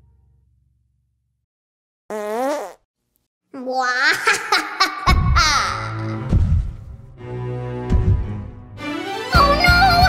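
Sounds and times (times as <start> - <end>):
cartoon fart sound effect: 2.1 - 2.9.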